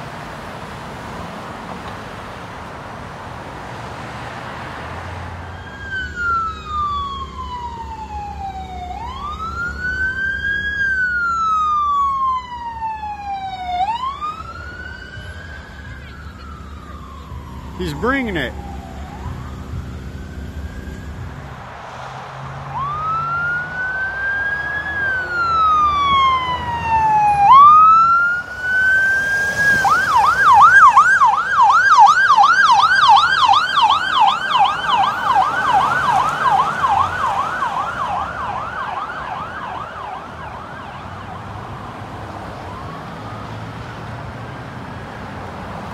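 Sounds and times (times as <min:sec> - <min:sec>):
ambulance siren wailing and yelping: 0:05.4 - 0:21.6, 0:22.6 - 0:45.9.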